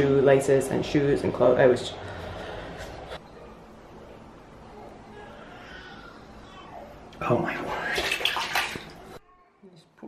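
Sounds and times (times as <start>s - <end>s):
water splashing in plastic basin: 7.7s - 9.2s.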